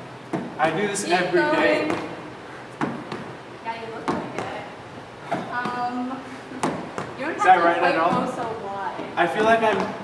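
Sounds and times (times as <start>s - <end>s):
feet thudding on step platform: 2.8s - 3.4s, 4.0s - 4.6s, 5.2s - 7.2s, 8.0s - 10.0s.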